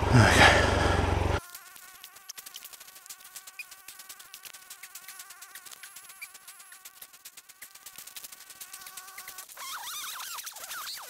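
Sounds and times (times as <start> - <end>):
flying insect buzzing: 1.3 - 11.0.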